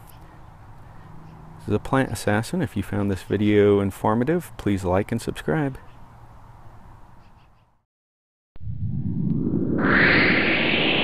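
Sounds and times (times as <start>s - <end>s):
low rumble: 8.6s - 11.0s
rushing whoosh: 8.6s - 11.0s.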